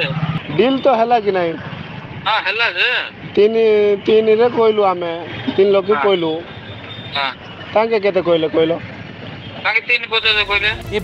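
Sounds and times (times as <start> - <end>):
man talking over a telephone: 2.2 - 6.5, 7.1 - 8.8, 9.6 - 11.0.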